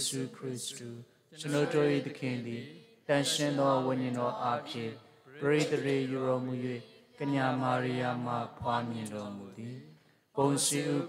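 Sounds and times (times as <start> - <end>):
person chanting a prayer: 0.0 - 11.0.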